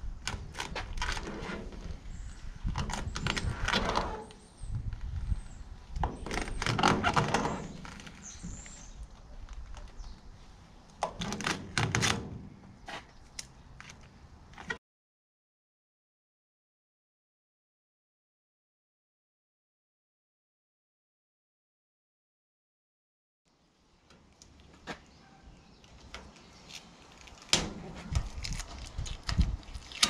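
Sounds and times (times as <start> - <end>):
vinyl wrap peeling crackly: 0.2 - 2.0, 6.2 - 10.0, 25.8 - 30.0.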